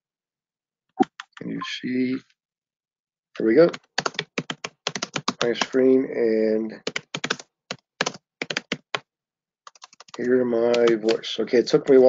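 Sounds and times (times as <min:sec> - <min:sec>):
typing on computer keyboard: 0:03.7 - 0:05.8, 0:06.8 - 0:09.0, 0:09.7 - 0:12.0.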